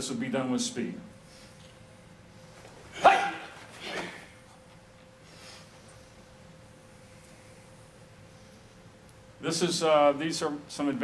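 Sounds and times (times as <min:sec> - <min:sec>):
karate shout: 0:02.9 - 0:04.2.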